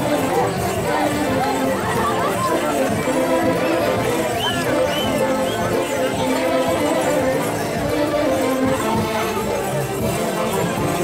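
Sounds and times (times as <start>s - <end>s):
band music with held notes: 0.0s - 11.0s
crowd talking and calling out: 0.0s - 11.0s.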